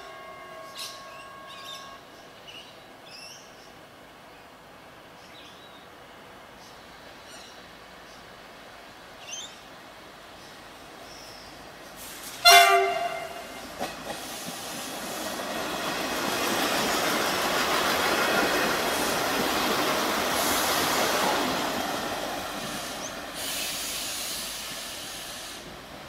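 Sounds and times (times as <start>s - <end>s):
railcar engine and wheels passing: 0.0s - 26.0s
train horn blast: 12.4s - 13.6s.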